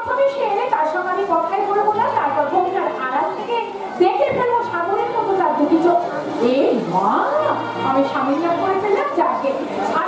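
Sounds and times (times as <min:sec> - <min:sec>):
woman speaking through microphone: 0:00.0 - 0:10.0.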